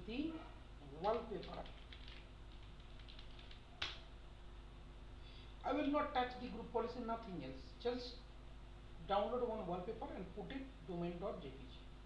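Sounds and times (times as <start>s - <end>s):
keyboard keys tapped lightly: 1.0s - 4.0s.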